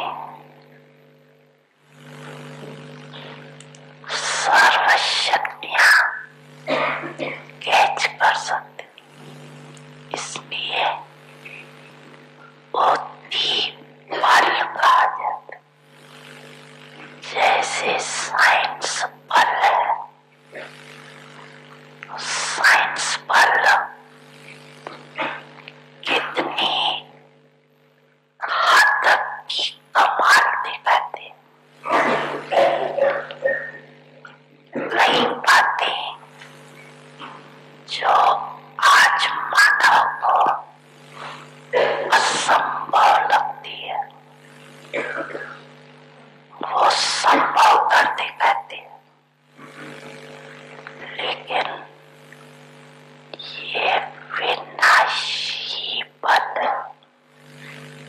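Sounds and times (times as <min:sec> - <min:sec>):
low electrical hum: 0:00.0 - 0:58.0
woman speaking into microphone: 0:04.1 - 0:06.3, 0:07.6 - 0:08.8, 0:10.1 - 0:11.1, 0:12.8 - 0:15.6, 0:17.2 - 0:20.0, 0:22.1 - 0:23.9, 0:26.1 - 0:27.1, 0:28.4 - 0:31.4, 0:34.8 - 0:36.2, 0:37.9 - 0:40.6, 0:41.8 - 0:44.1, 0:46.6 - 0:48.9, 0:53.4 - 0:56.9.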